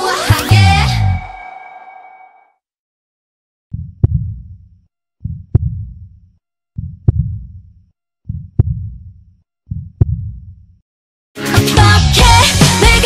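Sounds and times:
heartbeat sound effect: 3.7 - 6.2, 6.8 - 10.8.

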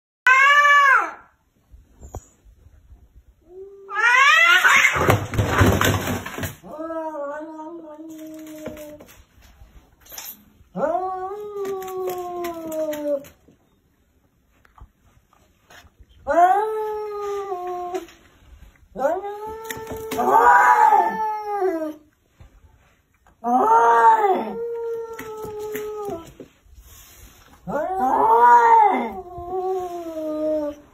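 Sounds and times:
cats yowling: 0.3 - 1.2, 3.8 - 5.2, 19.0 - 22.0, 23.4 - 26.4, 27.6 - 30.9
cat growling cry: 3.5 - 5.1, 10.7 - 13.3, 18.9 - 22.0, 23.4 - 26.4, 27.6 - 30.9.

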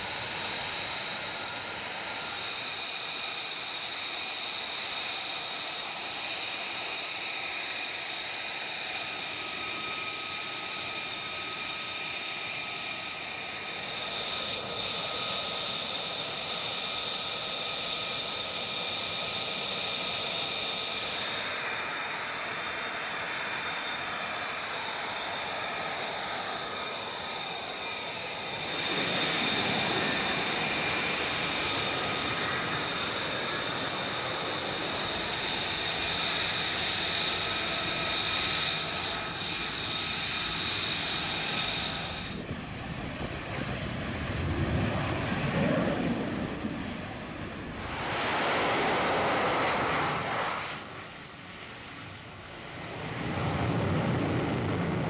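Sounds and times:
jet engines whining: 0.0 - 55.0
jet flying low: 0.0 - 55.0.

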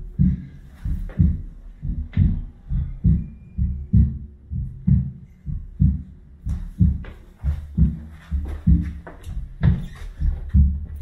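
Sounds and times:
amplified heartbeat: 0.0 - 11.0.

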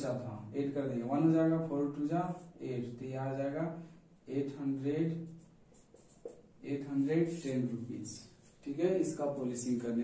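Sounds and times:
marker pen writing on board: 5.2 - 7.5, 8.2 - 8.6.

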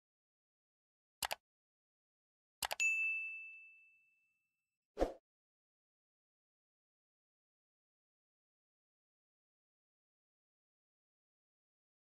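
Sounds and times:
high notification bell ding: 2.7 - 4.2.

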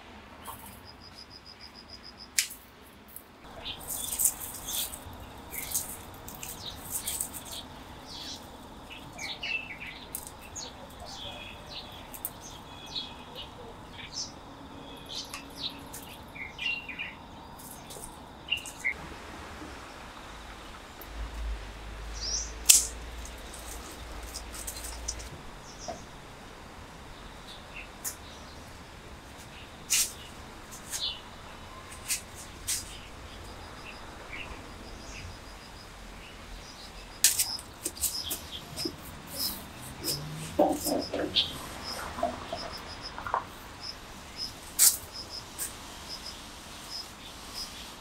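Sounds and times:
small birds chirping: 3.4 - 19.0, 22.1 - 26.2, 27.1 - 48.0.

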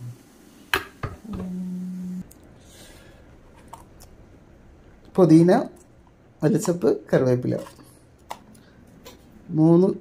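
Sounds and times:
steady low hum: 1.1 - 9.6.

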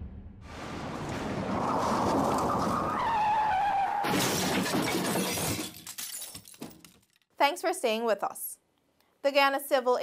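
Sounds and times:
car tyres screeching: 1.6 - 4.1
crash with glass shattering: 4.0 - 7.0.

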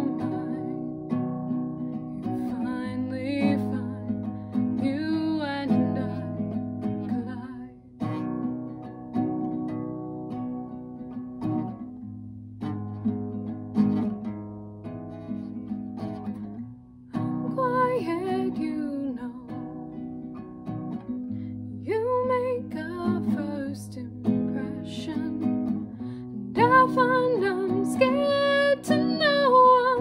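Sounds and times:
woman singing: 0.0 - 8.8, 17.1 - 20.4, 21.7 - 30.0
classical guitar strumming chords: 0.0 - 30.0.

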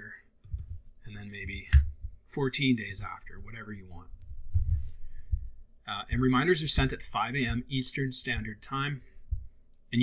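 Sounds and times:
dull low thumps: 0.4 - 2.3, 3.3 - 9.6
soft breath: 4.3 - 5.7.

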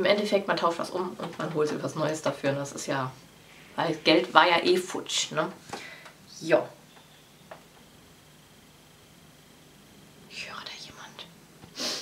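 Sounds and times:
woman whispering: 10.3 - 11.4
sharp hiss: 11.7 - 12.0.

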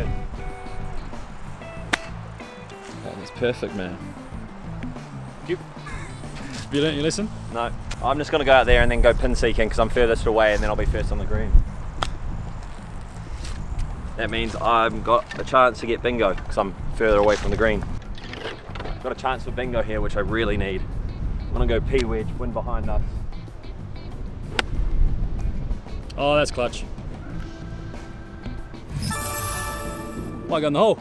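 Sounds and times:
wind rumble on microphone: 0.0 - 1.6, 6.6 - 18.2, 18.9 - 28.1
background music: 0.0 - 10.8, 11.5 - 31.0
golf club striking ball: 1.8 - 2.2, 24.5 - 24.8.

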